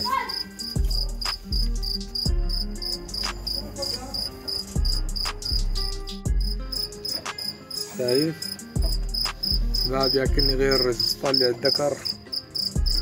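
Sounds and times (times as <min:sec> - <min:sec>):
cricket chirping: 0:00.0 - 0:13.0
dull low thumps: 0:08.8 - 0:10.6.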